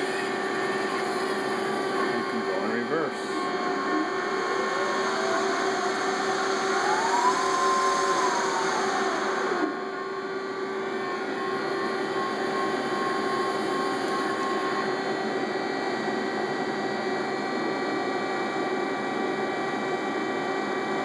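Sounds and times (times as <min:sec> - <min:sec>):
machine motor hum: 0:00.0 - 0:21.0
rising whine: 0:00.0 - 0:21.0.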